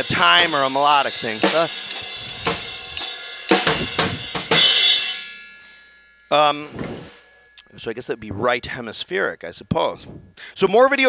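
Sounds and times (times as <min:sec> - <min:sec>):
drum kit strokes: 0:00.0 - 0:07.5
cymbal ringing: 0:00.0 - 0:08.2.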